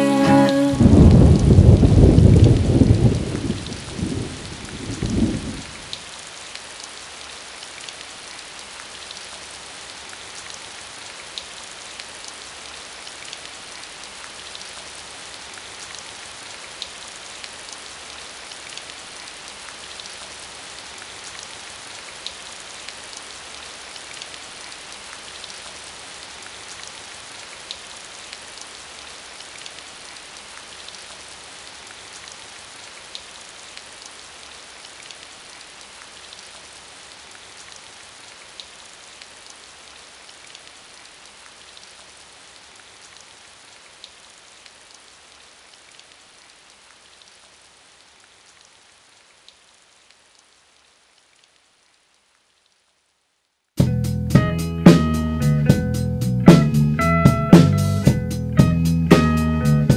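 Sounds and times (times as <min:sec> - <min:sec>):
steady rain: 0:00.0 - 0:59.9.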